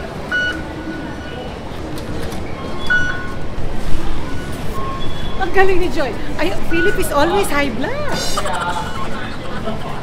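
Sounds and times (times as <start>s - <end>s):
station concourse noise: 0.0s - 10.0s.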